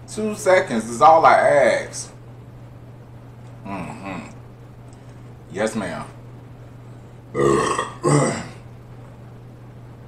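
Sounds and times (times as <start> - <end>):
man burping loudly: 7.3 - 8.6.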